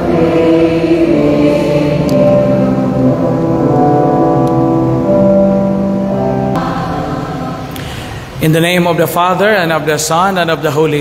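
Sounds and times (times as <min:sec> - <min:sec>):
congregation singing a hymn: 0:00.0 - 0:08.8.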